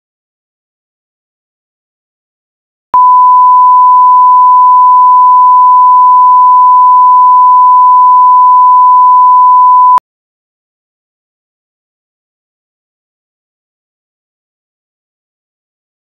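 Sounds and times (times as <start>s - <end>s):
electronic test tone: 3.0s - 10.0s.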